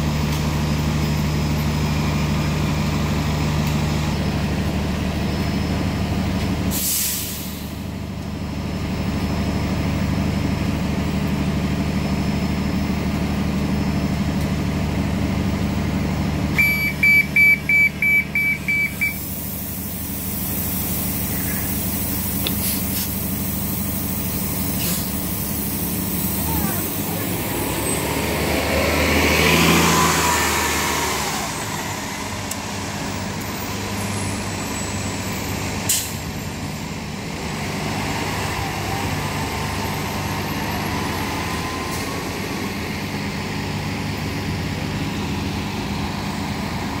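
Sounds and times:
bus engine pulling away: 0.0s - 47.0s.

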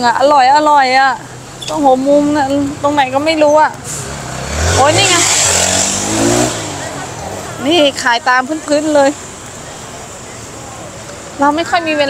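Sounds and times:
market street noise: 0.0s - 12.0s.

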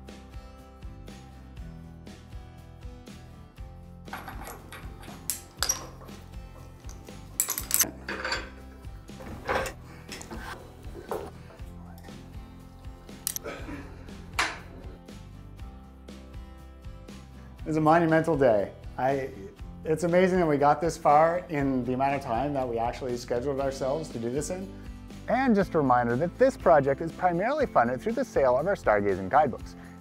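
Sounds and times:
background music: 0.0s - 30.0s
metal clinks and clanks: 4.1s - 10.2s.

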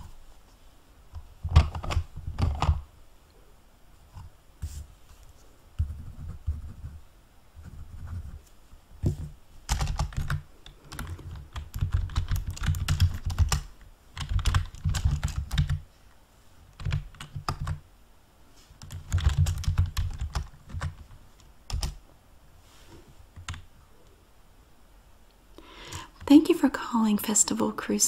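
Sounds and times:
rapid keyboard keystrokes: 1.4s - 2.8s, 9.0s - 15.8s, 16.7s - 17.8s, 18.8s - 22.0s, 23.3s - 23.7s.

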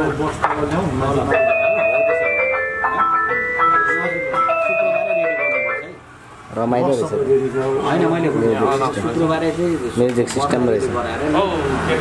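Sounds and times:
megaphone electronic jingle: 1.3s - 6.1s.

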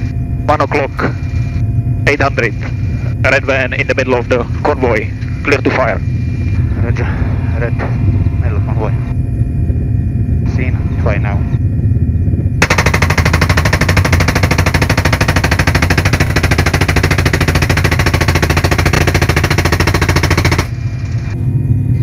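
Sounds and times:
helicopter engines and rotor drone: 0.0s - 22.0s
machine gun burst: 12.6s - 21.2s.

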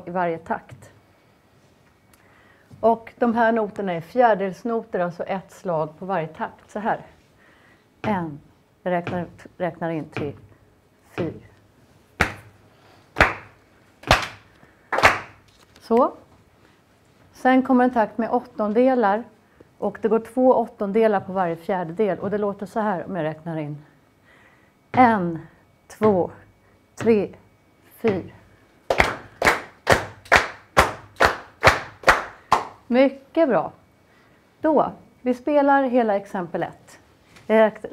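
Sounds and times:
person speaking count-in: 8.0s - 10.5s, 11.1s - 11.6s, 25.0s - 27.4s, 28.0s - 28.4s
hand claps keeping a steady beat: 12.2s - 12.6s, 13.2s - 15.4s, 28.9s - 32.8s.

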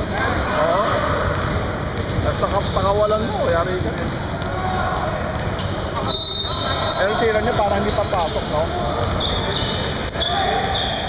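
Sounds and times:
players' voices: 0.0s - 11.0s
sneaker squeaks: 4.7s - 11.0s.

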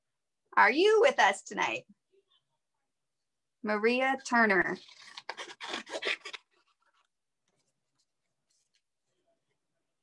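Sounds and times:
paper scratching and rustling: 4.7s - 9.3s.

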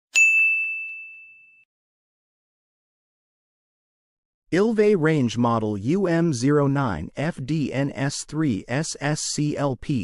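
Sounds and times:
high ding sound effect: 0.1s - 1.7s.

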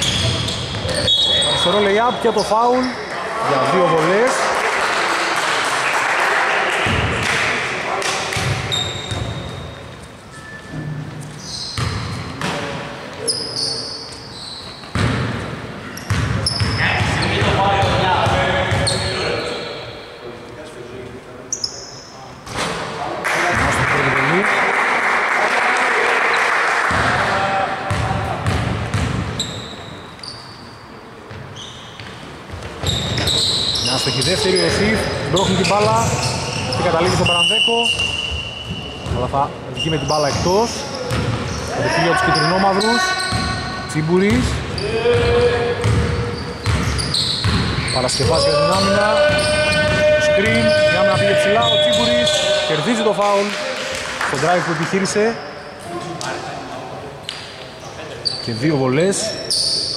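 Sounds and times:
shoe squeaks: 0.0s - 3.1s, 8.4s - 12.4s, 13.2s - 15.1s, 15.8s - 18.0s, 18.7s - 20.2s, 21.5s - 22.3s, 29.3s - 52.9s, 57.3s - 59.9s
voices echoing in gym: 0.0s - 59.9s
basketball bouncing on hardwood: 45.1s - 47.8s.

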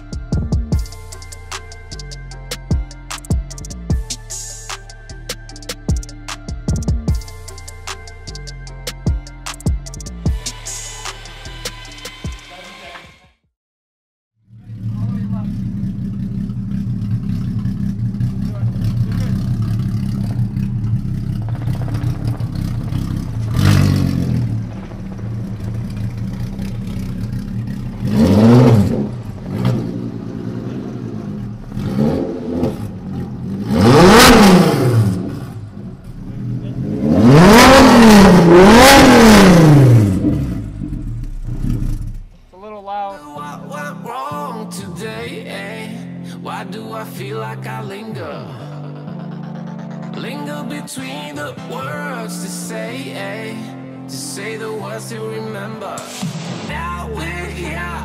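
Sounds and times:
engine revving from throttle blips: 14.5s - 42.3s
car engine idling: 14.5s - 43.1s.

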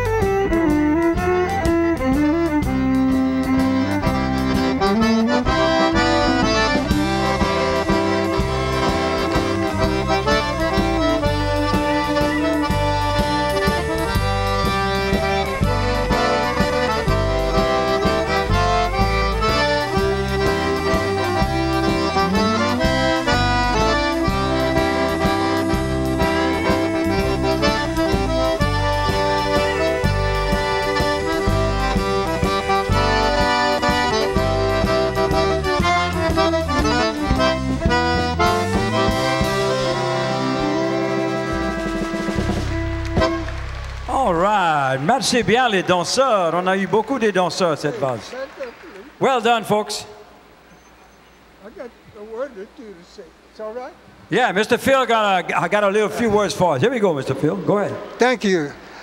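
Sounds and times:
fiddle: 0.0s - 44.4s
steady drum beat: 0.0s - 47.7s
bass: 0.0s - 47.9s
accordion: 0.0s - 53.0s.

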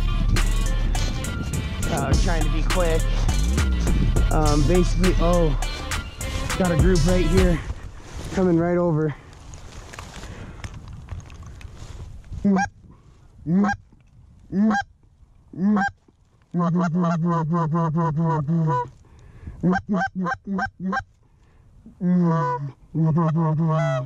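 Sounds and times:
rustling: 5.6s - 16.6s
goose honking: 12.4s - 12.7s, 13.5s - 13.8s, 14.5s - 14.9s, 15.6s - 18.9s, 19.6s - 21.1s, 22.0s - 24.0s
goose clucking: 12.5s - 12.7s, 13.5s - 13.8s, 15.6s - 19.0s, 19.6s - 21.1s, 22.0s - 24.0s.

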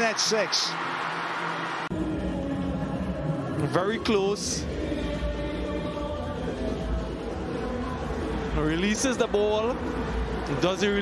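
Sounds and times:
stadium crowd roar: 0.0s - 3.6s, 7.2s - 11.0s.

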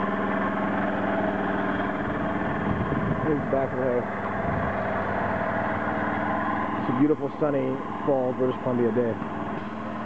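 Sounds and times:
small engine running: 0.0s - 10.0s.

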